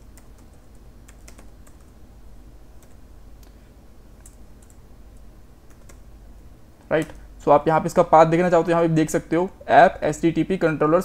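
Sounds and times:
computer keyboard typing: 0.0 - 2.0, 2.8 - 3.0, 4.2 - 6.0
low background hum: 0.0 - 11.0.

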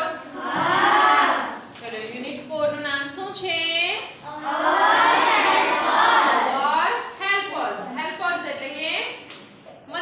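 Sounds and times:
children answering in chorus: 0.3 - 1.6, 4.3 - 6.6.

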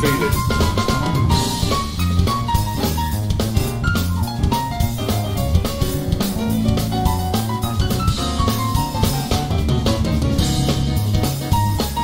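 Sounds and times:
drum kit with cymbals: 0.0 - 12.0
electric bass: 0.0 - 12.0
keyboard playing: 0.0 - 12.0.

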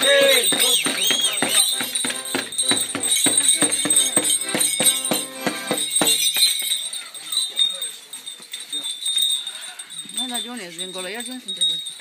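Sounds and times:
accordion folk dance tune: 0.0 - 6.2
bells jingling: 0.0 - 12.0.

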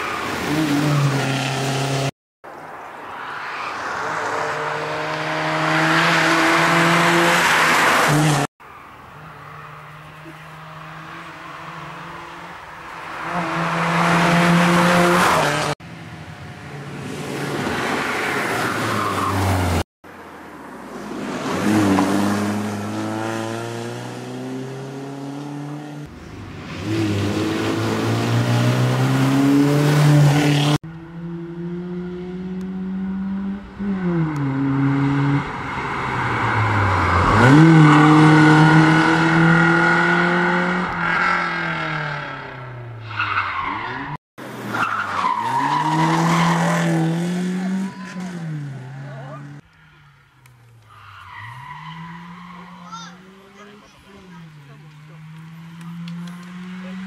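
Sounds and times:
rally car engine at full throttle: 43.8 - 49.7, 51.3 - 57.0.

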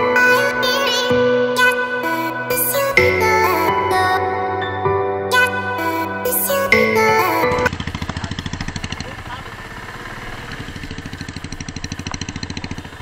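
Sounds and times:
motorcycle engine thumping: 7.7 - 13.0.

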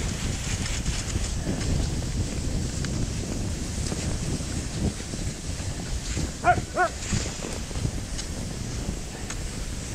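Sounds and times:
skis running on packed snow: 0.0 - 9.9
wind rumble: 0.0 - 9.9.

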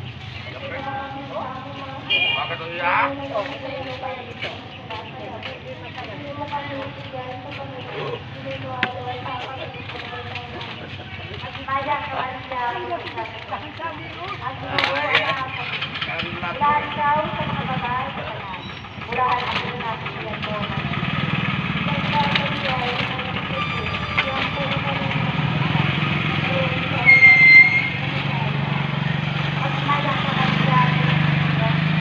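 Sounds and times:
motorcycle engine passing: 0.0 - 32.0
background voices: 2.8 - 21.1, 21.9 - 27.1
short high beep: 27.0 - 28.0.

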